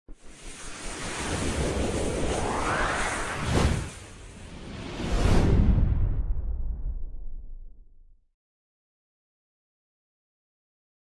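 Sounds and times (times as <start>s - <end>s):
whooshing wind-like swell: 0.2s - 6.8s
low rumble: 1.4s - 8.2s.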